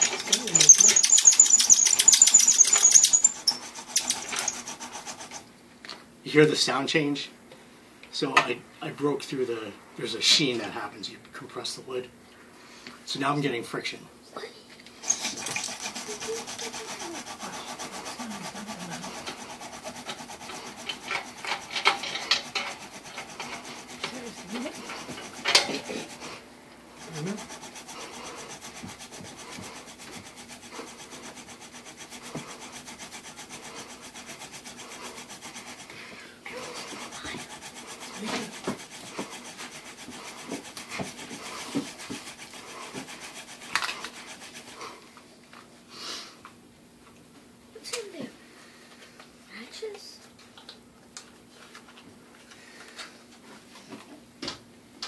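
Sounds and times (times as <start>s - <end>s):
wooden spindle grinding into board: 0.0s - 5.5s, 15.0s - 45.0s.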